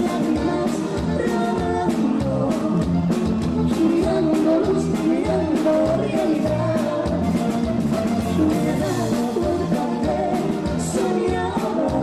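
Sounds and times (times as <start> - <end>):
woman singing: 0.0 - 7.6, 8.2 - 12.0
live band playing: 0.0 - 12.0
steady drum beat: 0.0 - 12.0.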